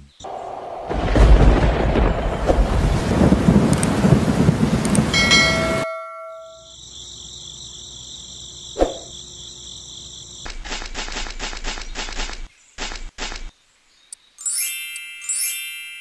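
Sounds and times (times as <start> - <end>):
heavy rain: 0.2 - 5.8
rumbling thunder: 0.2 - 5.8
brief chime: 5.2 - 6.8
cricket-like chirring: 5.2 - 13.5
sharp click: 10.5 - 13.5.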